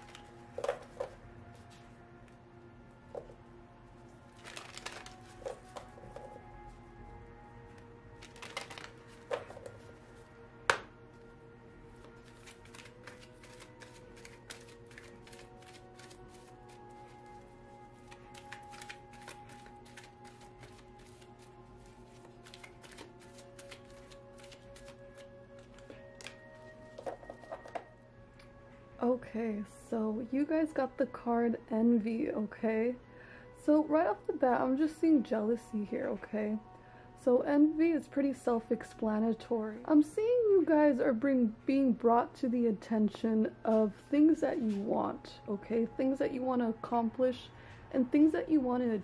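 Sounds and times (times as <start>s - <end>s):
cards shuffling: 0.0s - 1.9s, 4.4s - 6.4s, 8.2s - 9.9s, 12.0s - 27.9s
soft background music: 0.0s - 49.0s.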